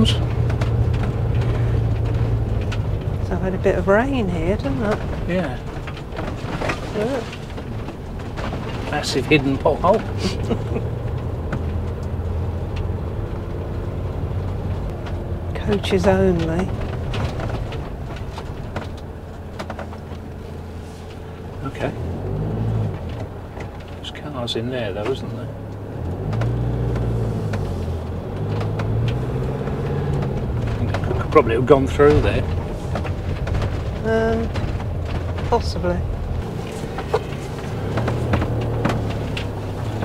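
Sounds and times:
clicks and rattles in cab: 0:00.0 - 0:40.0
engine drone: 0:00.0 - 0:40.0
tyre noise: 0:00.0 - 0:40.0.

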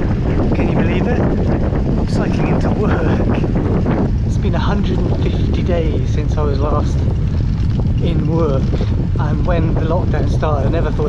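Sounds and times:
wind buffeting microphone: 0:00.0 - 0:11.0
man talking: 0:00.5 - 0:01.3, 0:02.0 - 0:07.1, 0:08.0 - 0:11.0.

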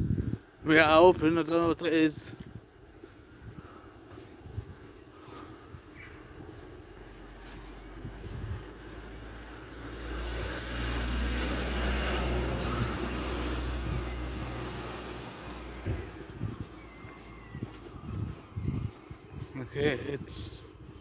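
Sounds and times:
car passing: 0:06.8 - 0:19.4.

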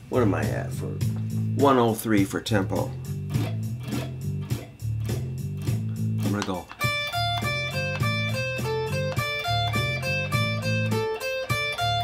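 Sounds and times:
drum machine beat: 0:00.2 - 0:01.8, 0:02.7 - 0:12.0.

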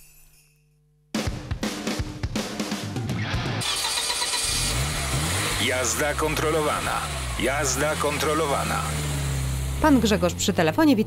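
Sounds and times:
car engine starting and revving: 0:03.1 - 0:11.0.

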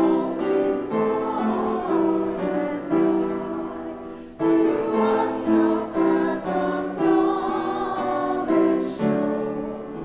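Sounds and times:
congregation singing a hymn: 0:00.0 - 0:10.0
keyboard accompaniment: 0:00.0 - 0:10.0.

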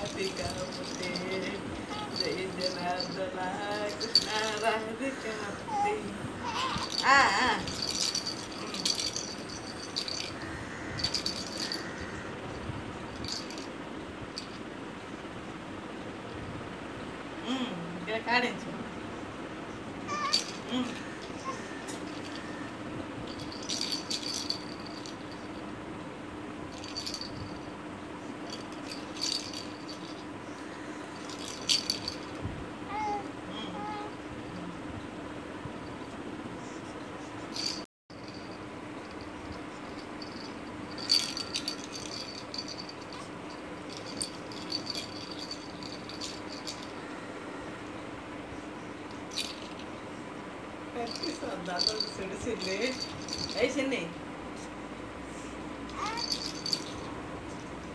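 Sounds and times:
plastic toy rattle shaken: 0:00.0 - 0:04.9, 0:06.4 - 0:10.4, 0:11.0 - 0:12.0, 0:13.1 - 0:13.7, 0:20.1 - 0:22.5, 0:23.2 - 0:25.6, 0:26.7 - 0:27.7, 0:28.4 - 0:30.4, 0:31.2 - 0:32.4, 0:37.5 - 0:47.0, 0:49.3 - 0:49.9, 0:51.1 - 0:54.0, 0:55.9 - 0:57.1
low background hum: 0:00.0 - 0:57.9.

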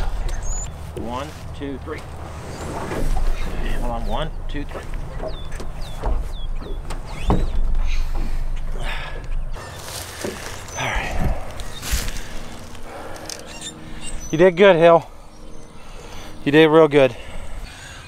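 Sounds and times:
low rumble: 0:00.0 - 0:17.8
birds chirping: 0:00.0 - 0:18.0.

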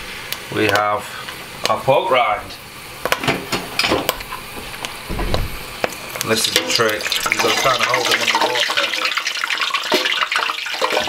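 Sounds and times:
pork rind sizzling in fat: 0:00.0 - 0:11.0.

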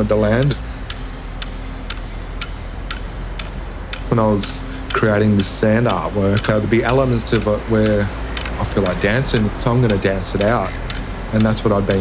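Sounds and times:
sharp clicks: 0:00.0 - 0:12.0
steady low hum: 0:00.0 - 0:12.0.

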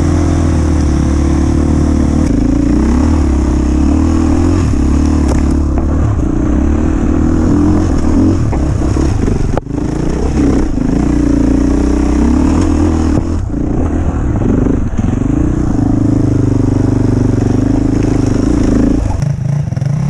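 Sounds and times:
motorcycle engine revving: 0:00.0 - 0:20.0.

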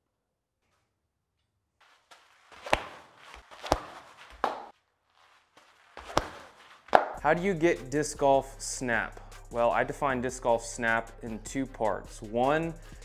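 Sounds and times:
foot thudding on ground: 0:02.1 - 0:04.7, 0:05.4 - 0:07.2.

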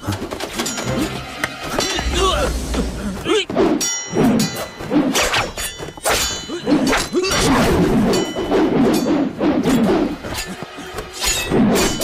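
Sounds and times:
swords clashing: 0:04.4 - 0:12.0.

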